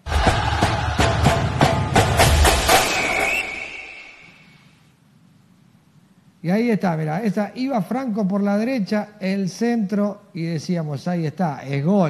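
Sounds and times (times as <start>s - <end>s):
sharp percussion hits: 0.0s - 4.6s.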